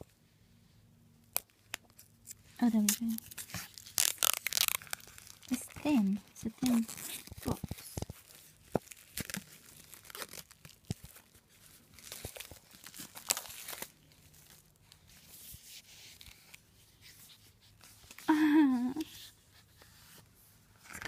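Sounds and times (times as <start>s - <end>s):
plastic packaging crinkling and tearing: 1.3s - 15.4s.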